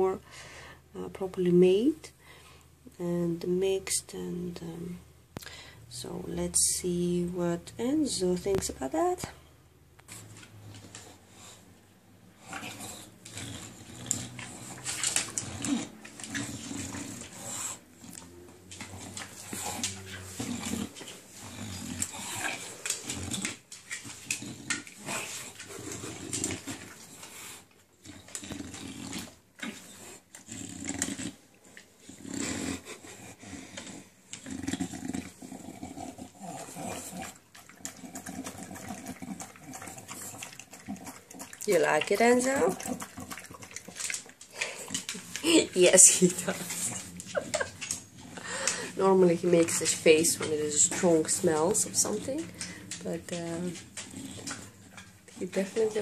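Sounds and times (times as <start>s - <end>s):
dog breathing and snuffling: 10.1s - 56.0s.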